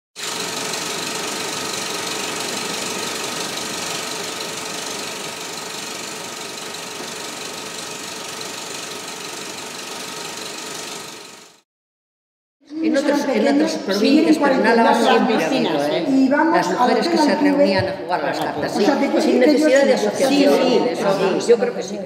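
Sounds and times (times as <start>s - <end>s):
dense machine-like noise: 0.2s - 11.6s.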